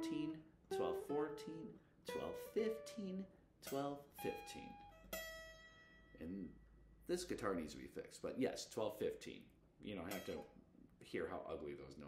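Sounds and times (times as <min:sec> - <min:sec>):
person talking: 0:00.0 - 0:04.8, 0:06.2 - 0:12.0
guitar note plucked: 0:00.0 - 0:06.4, 0:10.0 - 0:10.6.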